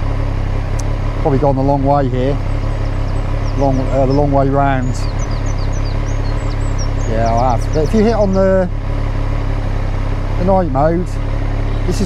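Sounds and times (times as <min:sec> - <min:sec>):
motorcycle engine idling: 0:00.0 - 0:12.0
bird chirping: 0:00.8 - 0:08.8, 0:10.4 - 0:12.0.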